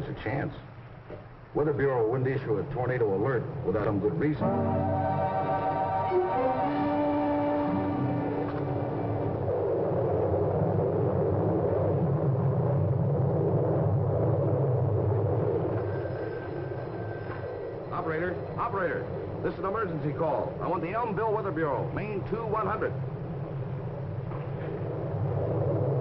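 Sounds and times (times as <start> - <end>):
low rumbling wind: 0.0 - 26.0
held chords music cue: 4.4 - 9.5.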